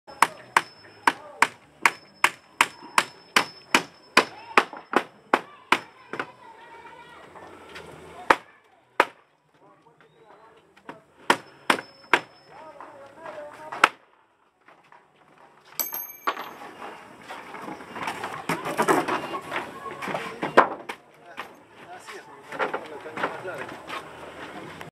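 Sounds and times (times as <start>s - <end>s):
hammer striking nails: 0.1s - 6.3s, 11.2s - 12.4s
voices: 0.1s - 15.3s, 16.8s - 24.9s
general work noise: 0.1s - 24.9s.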